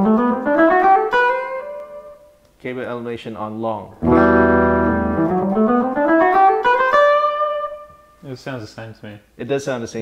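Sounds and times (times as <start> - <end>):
electric guitar playing: 0.0 - 2.3, 4.0 - 8.2.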